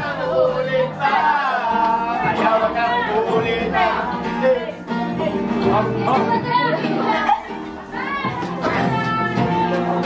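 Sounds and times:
acoustic guitar: 0:00.0 - 0:10.0
group singing and calling out: 0:00.0 - 0:10.0.

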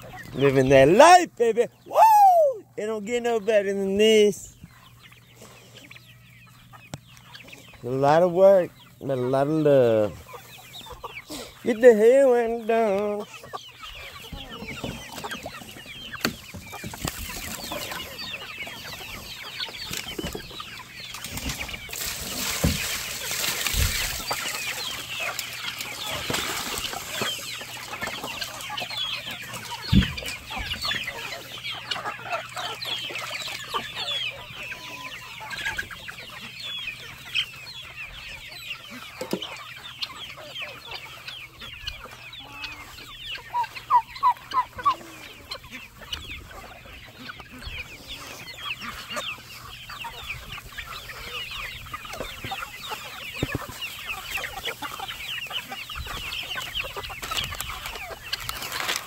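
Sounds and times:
chicks peeping and clucking: 0:00.0 - 0:59.0.

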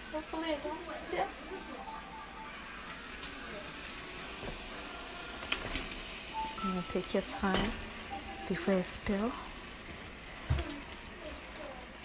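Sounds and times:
food sizzling in a pot: 0:00.0 - 0:12.0.

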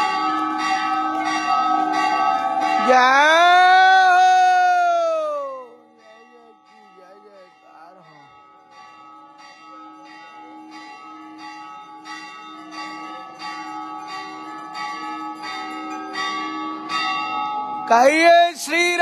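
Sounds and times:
temple bells ringing rapidly: 0:00.0 - 0:19.0.

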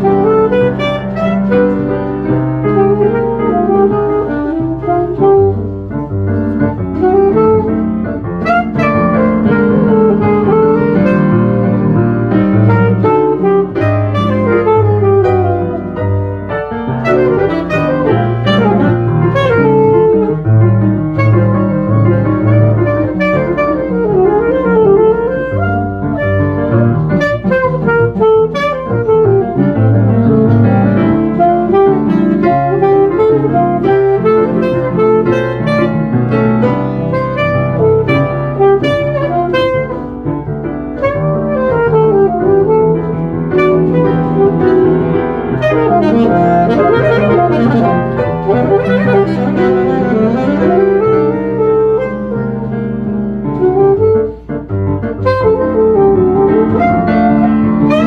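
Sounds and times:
grand piano accompaniment: 0:00.0 - 0:58.0
saxophone melody: 0:00.0 - 0:58.0.

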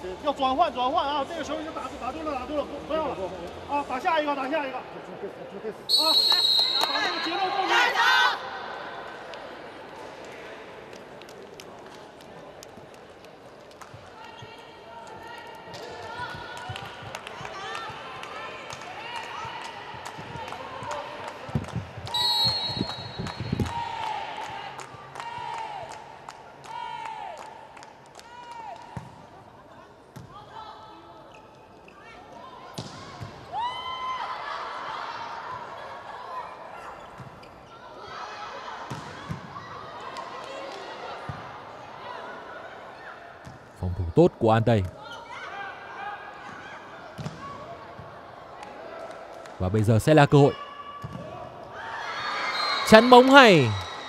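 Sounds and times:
loud shrill whistle: 0:05.9 - 0:07.3, 0:22.1 - 0:23.6, 0:52.4 - 0:54.0
hall noise and voices: 0:52.8 - 0:53.8.

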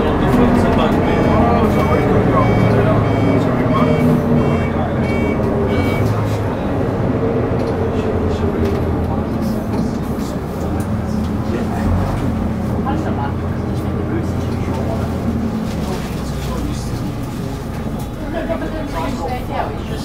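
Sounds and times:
bus engine droning: 0:00.0 - 0:20.0
road noise: 0:00.0 - 0:20.0.

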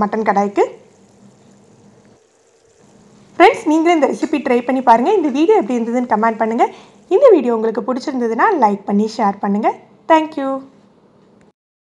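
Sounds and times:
low steady hum: 0:00.0 - 0:11.5.

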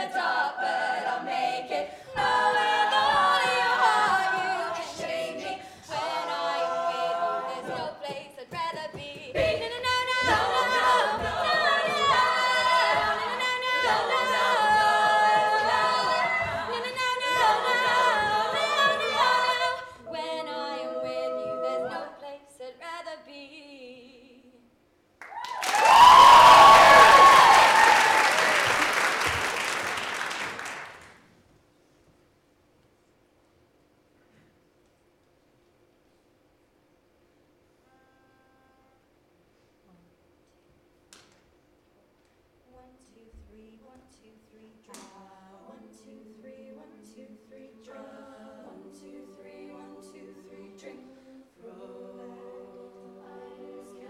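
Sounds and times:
women singing in harmony: 0:00.0 - 0:24.7, 0:43.1 - 0:54.0
vocal percussion: 0:02.1 - 0:22.1
whoops and cheers: 0:25.2 - 0:28.9
audience applause: 0:25.2 - 0:31.2.

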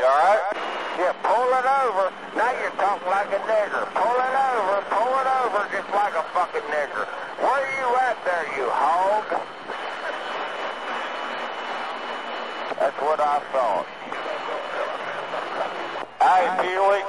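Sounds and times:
voice over radio: 0:00.0 - 0:09.5, 0:12.8 - 0:17.0
radio hiss: 0:00.0 - 0:17.0.

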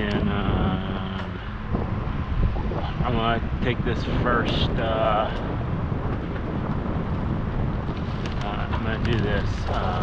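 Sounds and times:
wind rushing over microphone: 0:00.0 - 0:10.0.

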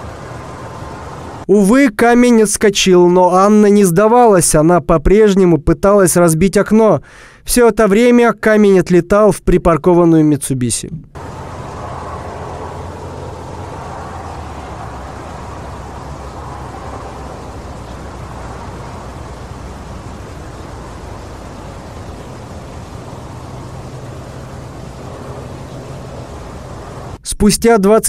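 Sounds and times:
even hiss: 0:00.0 - 0:02.4, 0:11.2 - 0:27.3
low hum: 0:11.2 - 0:27.2.

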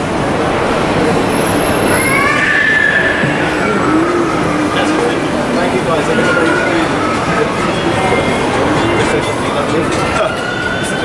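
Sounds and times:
train rumble on viaduct: 0:00.0 - 0:11.0.

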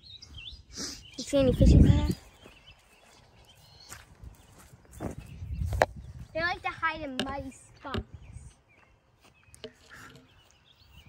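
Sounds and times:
faint outdoor ambience: 0:00.0 - 0:11.0
soft bird chirps: 0:00.0 - 0:11.0.

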